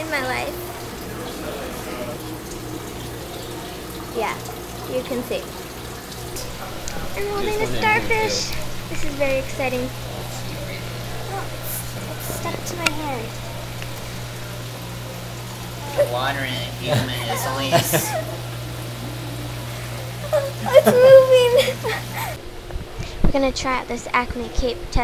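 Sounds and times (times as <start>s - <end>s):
water rushing through pipes: 0.0s - 24.7s
low steady hum: 0.0s - 25.0s.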